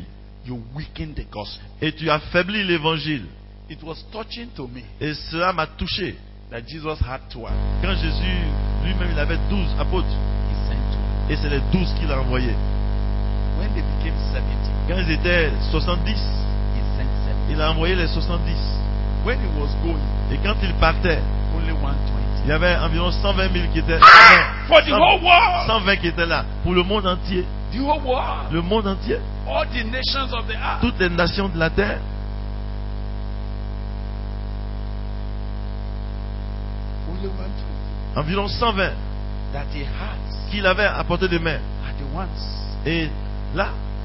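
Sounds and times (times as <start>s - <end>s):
electrical mains hum: 0.0s - 44.0s
person speaking: 22.1s - 32.0s, 39.6s - 43.8s.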